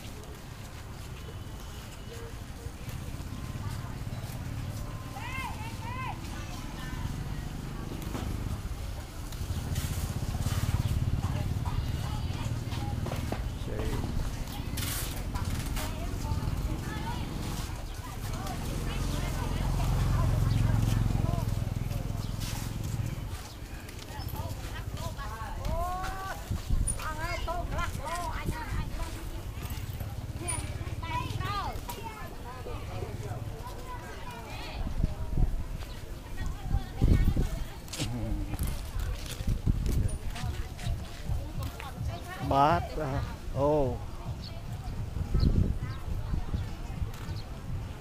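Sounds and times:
people talking: 0.0s - 48.0s
wind buffeting microphone: 25.2s - 29.5s, 34.8s - 42.5s, 43.3s - 48.0s.

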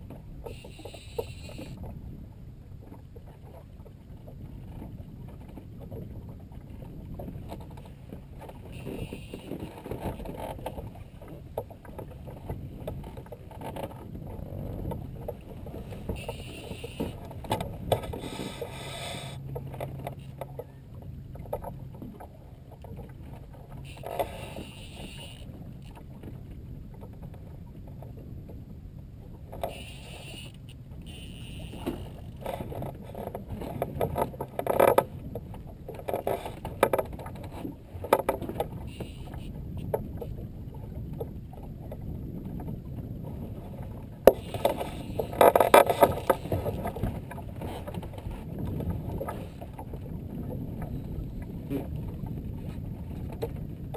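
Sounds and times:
water around boat: 0.0s - 53.9s
wind: 0.0s - 53.9s.

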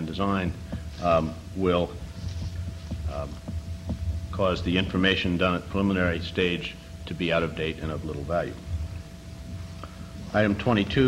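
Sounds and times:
man saying um: 0.0s - 2.1s, 3.0s - 3.4s
low electrical hum: 0.0s - 11.0s.

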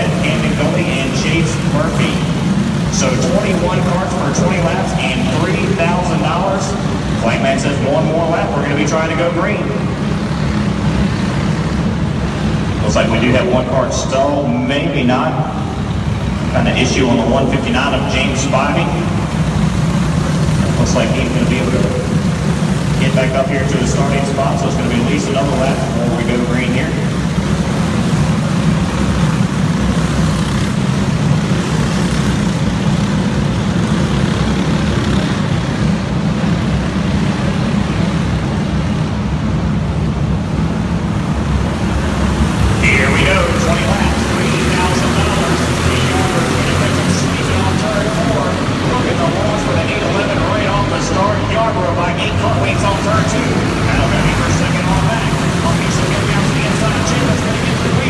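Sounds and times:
voices: 0.0s - 10.0s, 12.6s - 28.6s, 41.6s - 58.0s
kart engines droning: 0.0s - 58.0s.

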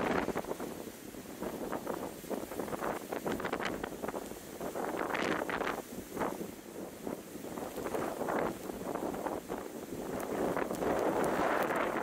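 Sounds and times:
strong wind: 0.0s - 12.0s.

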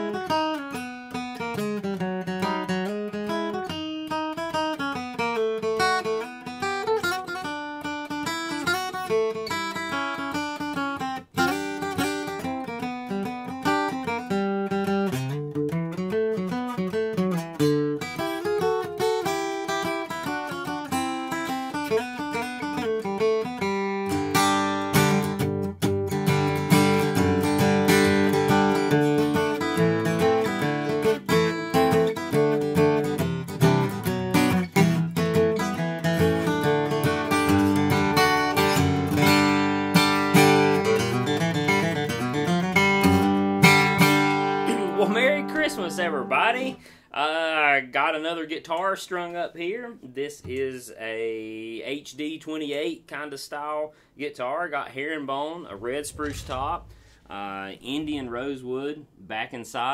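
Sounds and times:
acoustic guitar picked and strummed: 0.0s - 59.9s.

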